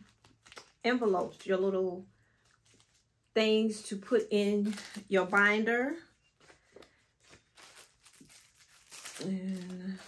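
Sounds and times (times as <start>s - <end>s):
paper rustling: 2.3s - 3.2s, 4.5s - 10.0s.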